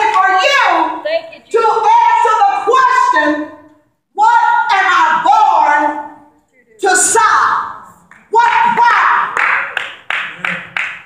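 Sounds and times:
rhythmic hand claps: 0:08.0 - 0:11.0.

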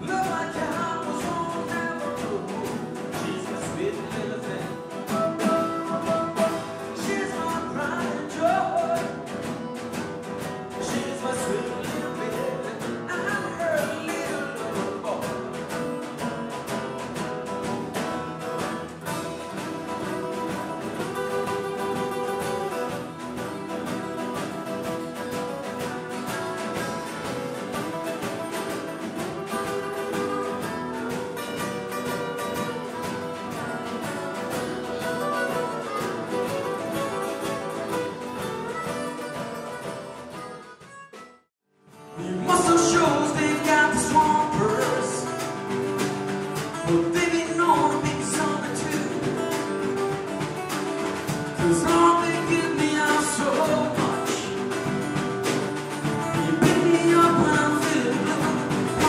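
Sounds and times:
harmonica bending notes: 0:00.0 - 0:41.5
strummed acoustic guitar: 0:00.0 - 0:59.0.

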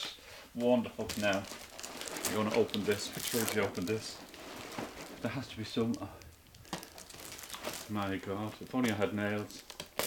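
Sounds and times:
cellophane crinkling: 0:00.6 - 0:10.0.

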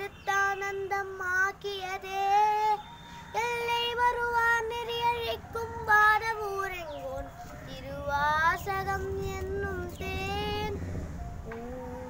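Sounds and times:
boy chanting in sung style: 0:00.0 - 0:12.0.

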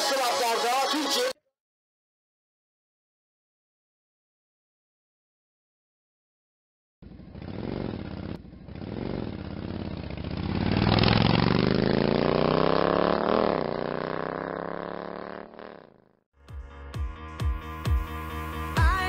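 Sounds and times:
motorcycle engine revving: 0:07.0 - 0:16.3.

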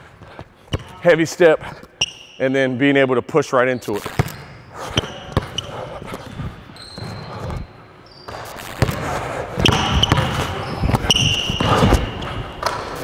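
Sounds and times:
basketball dribbling on hardwood: 0:08.6 - 0:12.2.

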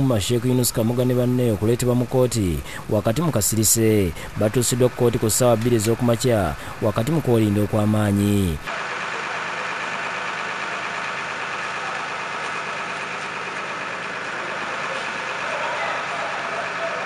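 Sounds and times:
bus engine idling: 0:00.0 - 0:17.0.

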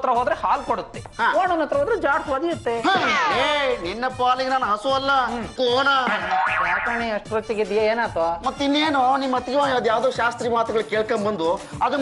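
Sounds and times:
comic background music: 0:02.8 - 0:07.6
pitch-bending sound effects: 0:06.0 - 0:07.2.

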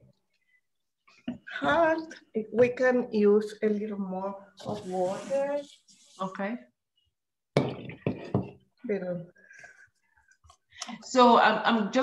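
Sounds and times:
person speaking: 0:01.4 - 0:06.6.

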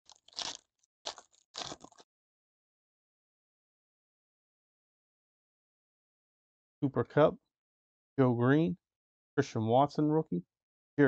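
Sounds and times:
foil wrapper crinkling and tearing: 0:00.0 - 0:02.0.

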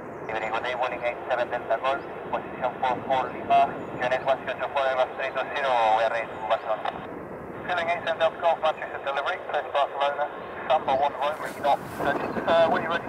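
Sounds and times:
faint aircraft noise: 0:00.0 - 0:13.0
radio voices through scanner: 0:00.3 - 0:13.0.

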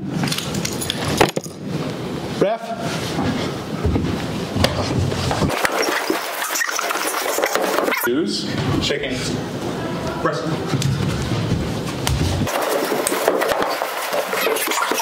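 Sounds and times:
indistinct voices: 0:07.7 - 0:12.5.

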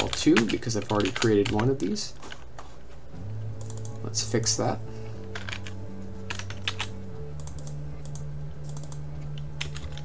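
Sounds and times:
background music low notes: 0:00.0 - 0:10.0
keyboard keystroke clicks: 0:03.6 - 0:04.0, 0:06.3 - 0:10.0.

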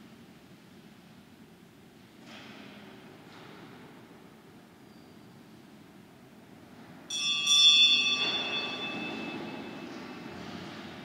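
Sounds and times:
small bell ringing: 0:07.1 - 0:09.9.

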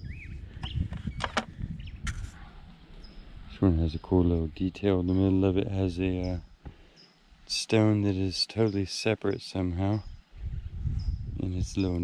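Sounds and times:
bird chirp: 0:00.0 - 0:10.4, 0:11.0 - 0:12.0.

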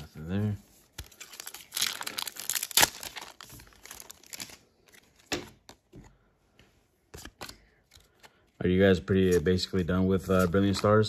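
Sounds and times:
foil wrapper tearing and crinkling: 0:01.0 - 0:04.6.

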